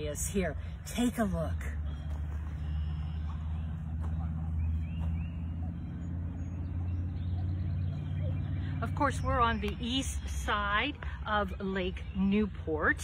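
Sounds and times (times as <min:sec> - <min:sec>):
motor vehicle engine rumbling: 0:00.0 - 0:13.0.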